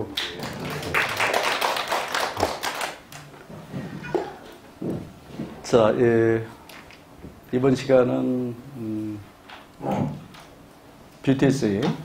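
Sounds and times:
audience clapping: 0:00.0 - 0:03.5.

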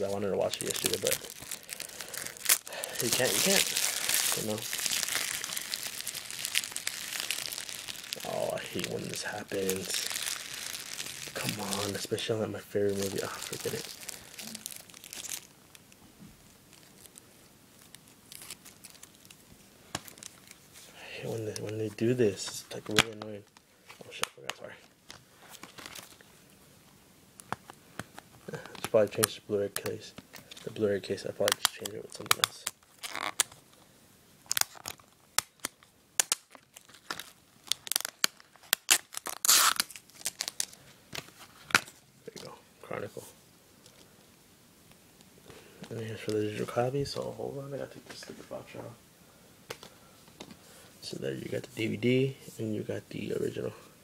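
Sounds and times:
plastic wrapping crinkling and tearing: 0:00.0 - 0:16.0, 0:16.6 - 0:20.8, 0:21.5 - 0:26.3, 0:27.4 - 0:33.8, 0:34.4 - 0:42.5.

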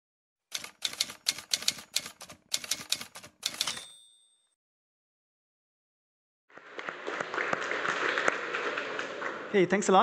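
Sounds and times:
typewriter key strikes: 0:00.5 - 0:04.1
typewriter bell ringing: 0:00.6 - 0:04.6.

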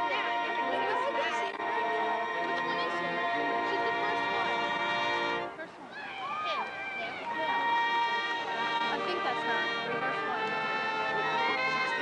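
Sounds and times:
marching band playing: 0:00.0 - 0:05.6, 0:06.8 - 0:12.0
voice calling from crowd: 0:00.0 - 0:12.0.

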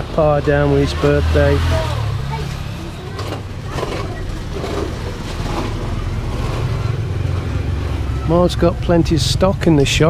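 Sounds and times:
faint voices: 0:00.0 - 0:10.0
vehicle engine hum: 0:00.0 - 0:10.0.

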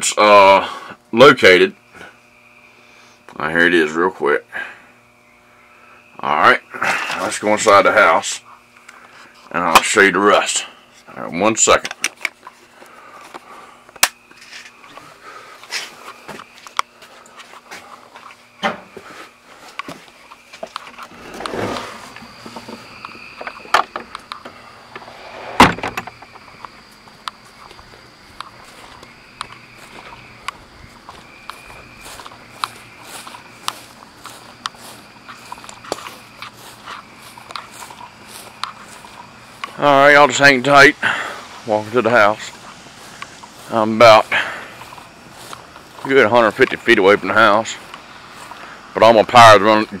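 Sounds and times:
footsteps outdoors: 0:04.6 - 0:50.0.

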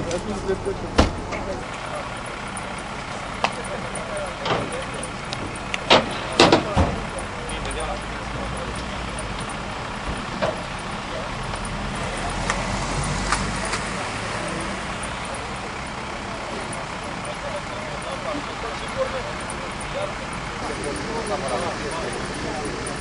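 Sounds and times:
indistinct voices: 0:00.0 - 0:23.0
vehicle engine rumbling: 0:00.0 - 0:23.0
sharp clicks: 0:01.8 - 0:17.4.

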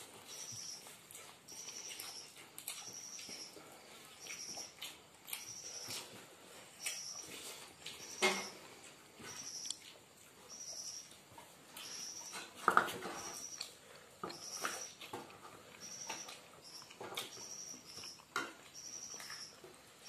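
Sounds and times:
wet chewing and smacking: 0:00.0 - 0:20.0.

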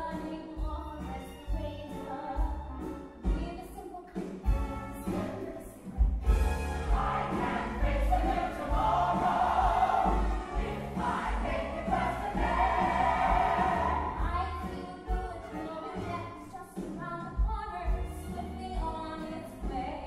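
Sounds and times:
pit band playing: 0:04.4 - 0:16.2
ensemble singing: 0:06.6 - 0:14.7.

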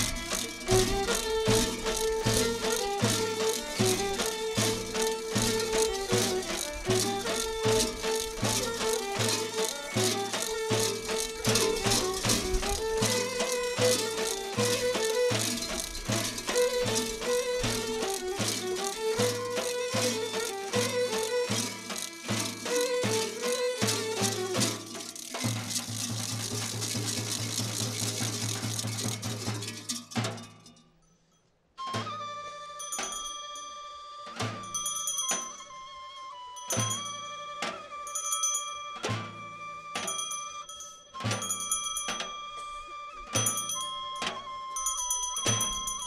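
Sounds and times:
large metal bells clanging: 0:00.0 - 0:31.2, 0:32.7 - 0:35.9, 0:36.5 - 0:39.4, 0:40.0 - 0:46.0.

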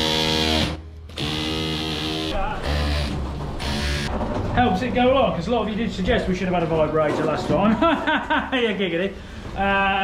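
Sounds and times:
drill buzzing against steel: 0:00.0 - 0:04.1.

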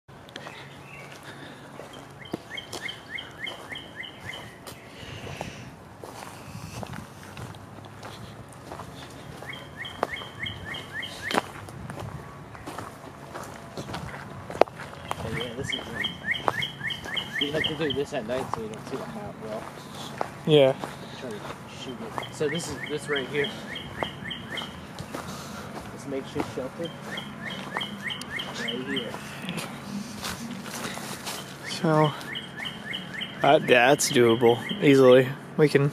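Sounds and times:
footstep-like clicks and rustles: 0:00.2 - 0:33.5
songbird chirping: 0:00.2 - 0:35.9.

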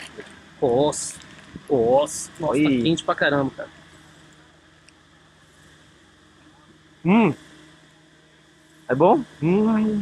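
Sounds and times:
faint outdoor background noise: 0:00.0 - 0:10.0
low even hum: 0:00.0 - 0:10.0.

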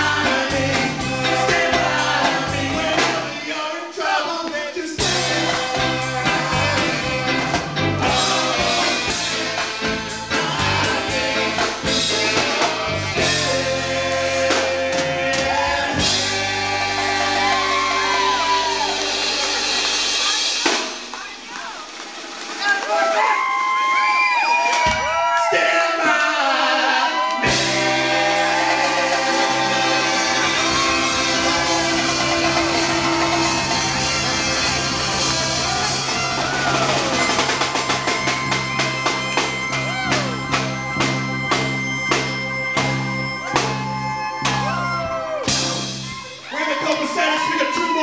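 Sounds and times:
regular drum beat: 0:00.0 - 0:03.6, 0:04.4 - 0:22.8, 0:27.4 - 0:46.5
person singing: 0:00.0 - 0:19.4, 0:25.8 - 0:37.2
live band with guitar and horns: 0:00.0 - 0:25.5, 0:26.2 - 0:48.0
crowd voices: 0:00.0 - 0:48.0
sliding notes: 0:27.4 - 0:46.4.

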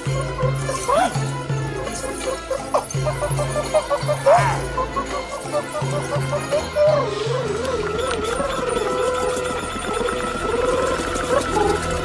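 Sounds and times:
rattle of small jingles: 0:00.0 - 0:12.0
wavering vibrato melody: 0:00.0 - 0:12.0.

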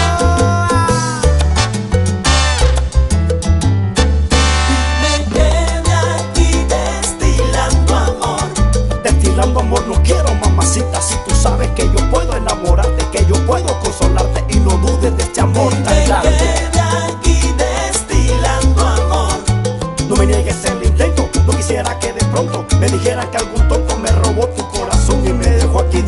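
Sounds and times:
salsa band playing: 0:00.0 - 0:26.0.

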